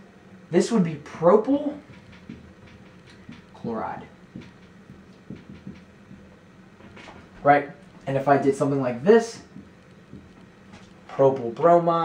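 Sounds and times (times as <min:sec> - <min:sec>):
marker writing on whiteboard: 0:01.6 - 0:07.4, 0:09.4 - 0:11.5.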